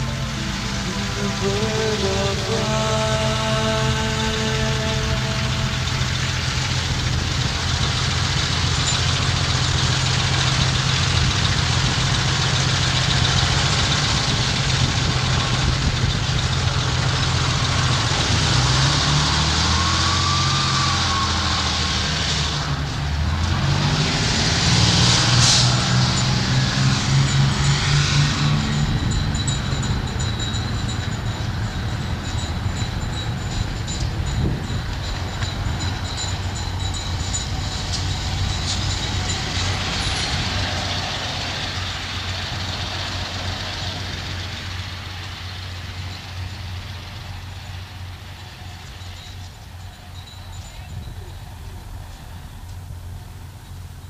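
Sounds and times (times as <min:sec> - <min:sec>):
whistle-like tone: 0:19.2 - 0:22.2.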